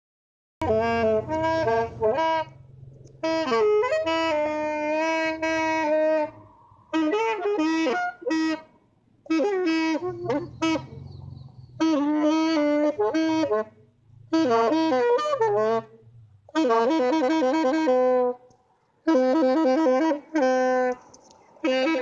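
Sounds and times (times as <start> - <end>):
wind instrument melody: 0.6 - 22.0.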